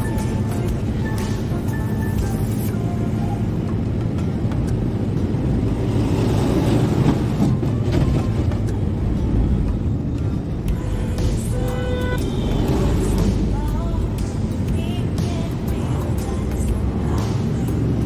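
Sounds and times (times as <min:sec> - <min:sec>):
music playing: 0:00.0 - 0:18.0
truck engine and road rumble: 0:00.0 - 0:18.0.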